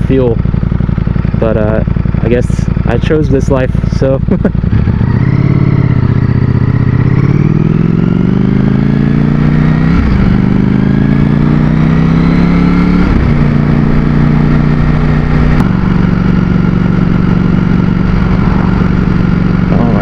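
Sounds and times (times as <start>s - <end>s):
motorcycle engine accelerating: 0.0s - 20.0s.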